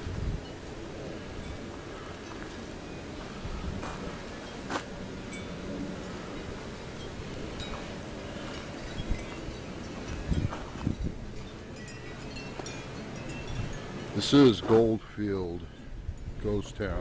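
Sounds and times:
wind rumbling on microphone: 0.0 - 17.0
faint high chiming tones: 0.4 - 16.6.

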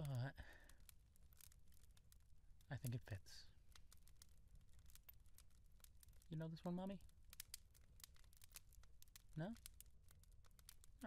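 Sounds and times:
faint crackling clicks: 0.0 - 11.0.

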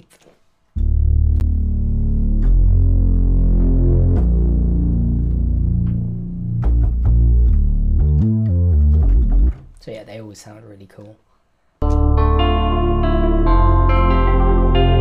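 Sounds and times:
synth bass low sustained notes: 0.8 - 9.6, 11.8 - 15.0.

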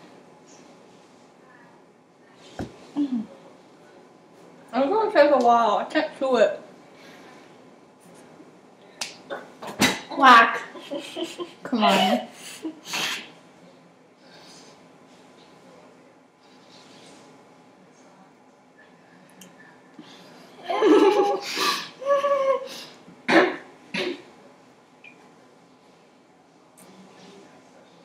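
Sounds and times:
faint breathing: 6.9 - 7.7, 14.2 - 15.0.

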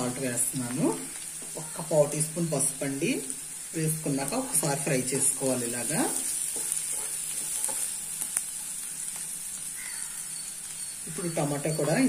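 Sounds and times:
vegetables sizzling in oil: 0.0 - 12.0.

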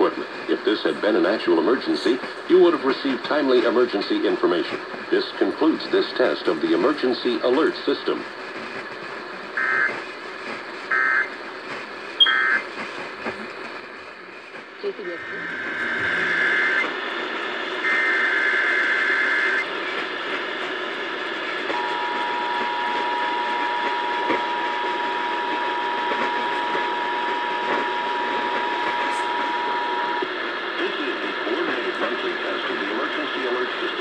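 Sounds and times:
radio static hiss: 0.0 - 34.0
two-tone attention signal: 12.2 - 12.6, 15.0 - 16.8, 17.8 - 19.6, 21.7 - 30.2.

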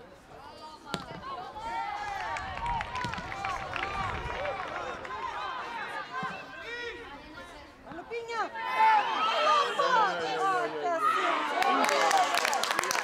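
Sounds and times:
ball being kicked: 0.9 - 1.3, 2.9 - 3.3.

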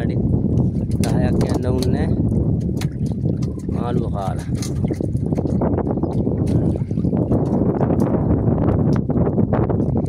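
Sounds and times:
water lapping against boat hull: 0.0 - 10.0
wind rumbling on microphone: 0.0 - 10.0
knocks and splashes: 0.6 - 10.0.

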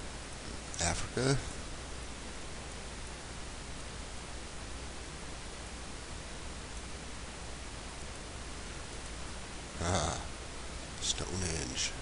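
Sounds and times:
steady hiss with low hum: 0.0 - 12.0
man saying ah: 0.8 - 1.5, 9.8 - 10.3.

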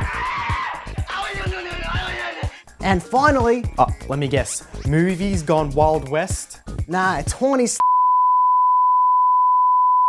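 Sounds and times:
censor bleep: 7.8 - 10.0.

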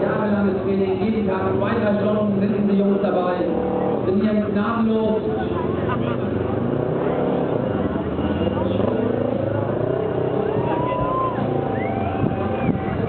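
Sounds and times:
motorcycle engine revving: 5.4 - 13.0.

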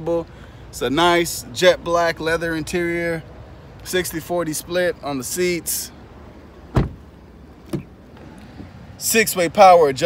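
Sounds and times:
truck door slamming: 6.6 - 8.0.

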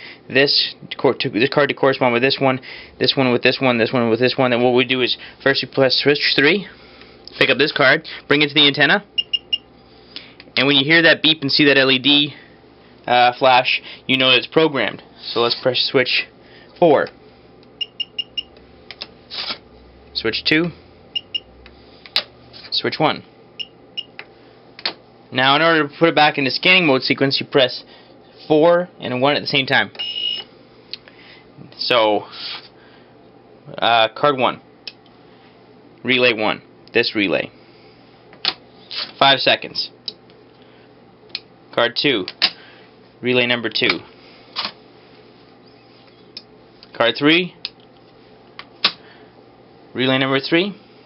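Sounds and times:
buzzer short high beeps: 9.2 - 9.7, 17.8 - 18.5, 21.1 - 21.5, 30.0 - 30.5.

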